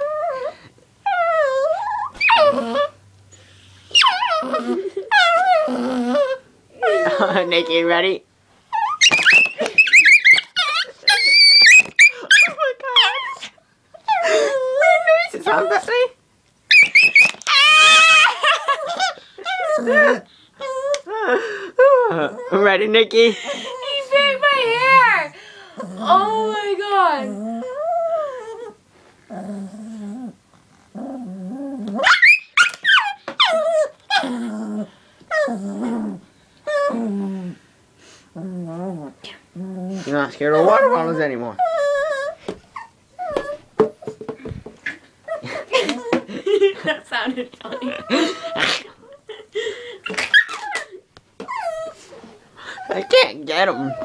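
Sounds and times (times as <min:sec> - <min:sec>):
dog yelping whines: 0:01.1 - 0:03.0, 0:03.9 - 0:07.4, 0:08.7 - 0:15.8, 0:16.7 - 0:21.1, 0:31.9 - 0:34.4, 0:40.5 - 0:43.7, 0:50.0 - 0:52.0, 0:52.8 - 0:54.0
small dog growling: 0:01.1 - 0:03.0, 0:03.9 - 0:07.8, 0:17.5 - 0:22.6, 0:25.7 - 0:32.2, 0:32.9 - 0:37.6, 0:38.3 - 0:43.5, 0:50.0 - 0:54.0
small dog barking and yapping: 0:08.8 - 0:13.5, 0:16.7 - 0:19.1, 0:32.0 - 0:33.6.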